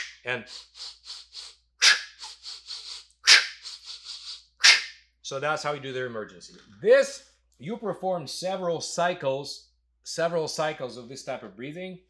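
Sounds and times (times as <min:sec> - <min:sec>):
man exhaling sharply: 0:00.0 - 0:04.4
man sniffing quick breaths: 0:00.0 - 0:04.9.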